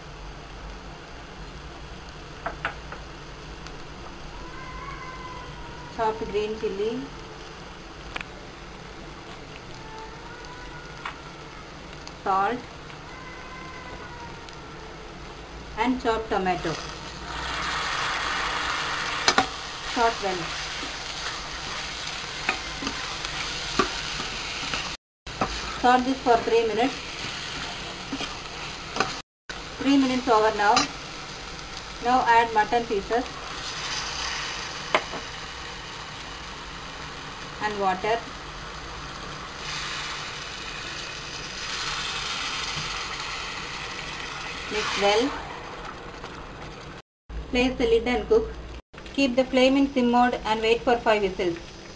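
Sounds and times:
onions sizzling in hot oil: 0:00.0 - 0:51.9.

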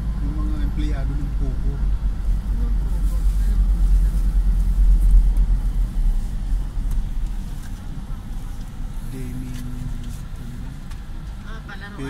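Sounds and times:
car engine rumble: 0:00.0 - 0:12.0
road noise: 0:00.0 - 0:12.0
people talking: 0:02.5 - 0:04.6, 0:09.1 - 0:10.8, 0:11.5 - 0:12.0.

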